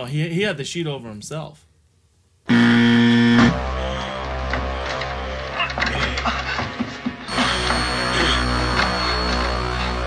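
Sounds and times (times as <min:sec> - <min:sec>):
wrong answer buzzer: 0:02.5 - 0:04.0, 0:07.3 - 0:10.0.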